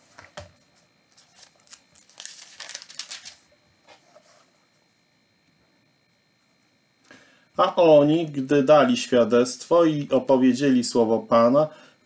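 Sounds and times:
book pages rustling: 1.1s - 4.5s.

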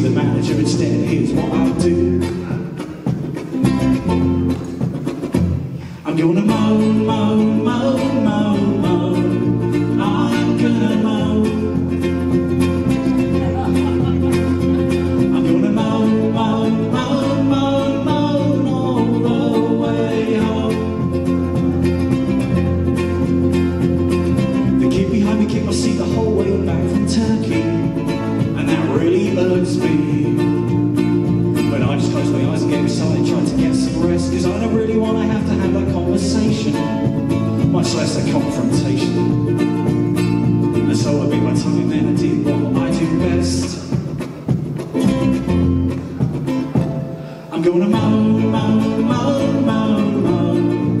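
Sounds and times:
man singing: 0.0s - 4.6s, 5.9s - 23.1s, 24.4s - 44.2s, 47.4s - 51.0s
electric bass guitar: 0.0s - 51.0s
ukulele: 0.0s - 51.0s.

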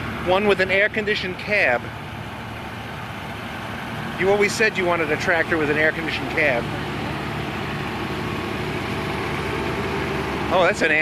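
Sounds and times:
tractor engines running: 0.0s - 11.0s.

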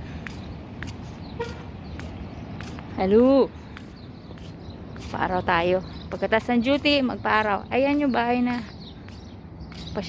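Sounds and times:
walking footsteps: 0.0s - 10.0s.

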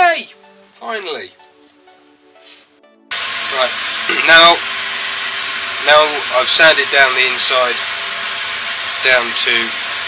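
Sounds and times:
machinery loud steady hiss: 3.1s - 10.0s.

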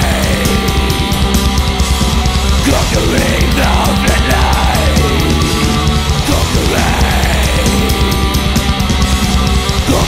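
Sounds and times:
distorted guitars and bass: 0.0s - 10.0s
fast dense drumming: 0.0s - 10.0s.

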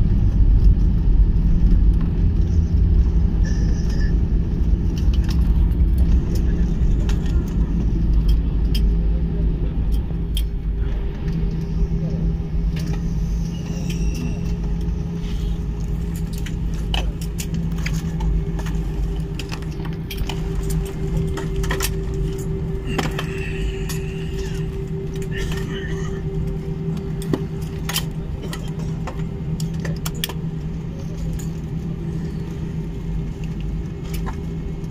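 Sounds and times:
jet wheels and engines rumbling: 0.0s - 34.9s
clicks and rattles in cabin: 4.9s - 9.0s, 12.7s - 34.9s.

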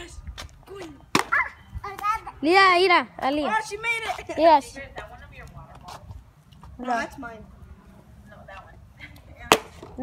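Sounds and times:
plastic bottle hitting asphalt: 9.5s - 10.0s.

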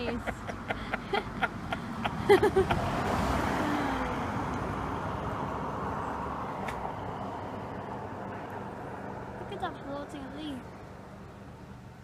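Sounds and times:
rushing traffic noise: 0.0s - 12.0s.

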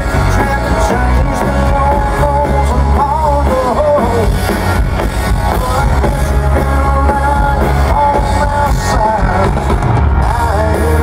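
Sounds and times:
live country band playing: 0.0s - 11.0s.

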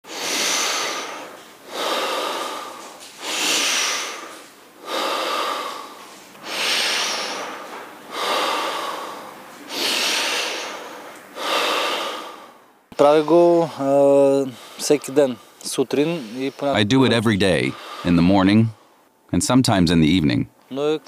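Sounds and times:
man breathing strongly: 0.1s - 16.7s, 17.7s - 19.1s.

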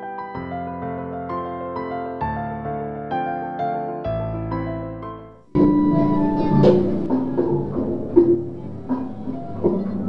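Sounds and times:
knocks: 5.6s - 10.0s.

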